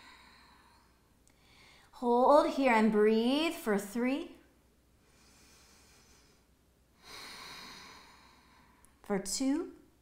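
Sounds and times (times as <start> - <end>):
woman exhaling slowly: 7.0 - 8.8.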